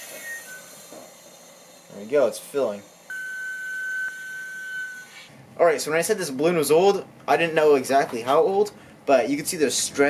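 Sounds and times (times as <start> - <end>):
gas hissing into balloon: 0.0 - 2.0.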